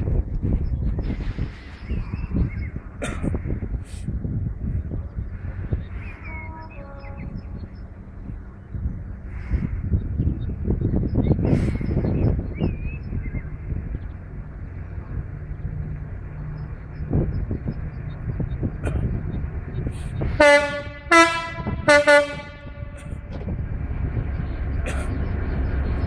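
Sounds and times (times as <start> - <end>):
wind buffeting microphone: 0.0 - 26.0
birdsong: 0.6 - 26.0.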